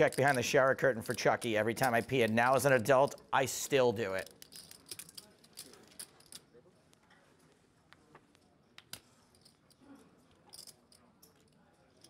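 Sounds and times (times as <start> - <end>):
poker chips clicking: 0.0 - 6.4.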